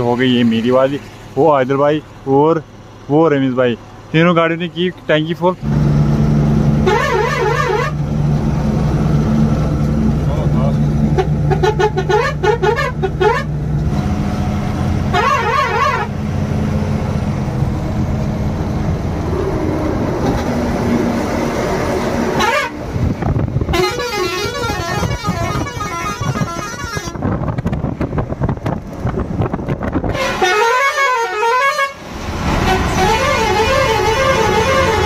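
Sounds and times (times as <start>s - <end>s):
truck engine droning: 0.0s - 35.0s
warbling trilling horn: 6.8s - 8.0s, 11.1s - 13.6s, 15.1s - 16.2s, 22.2s - 22.9s, 32.6s - 35.0s.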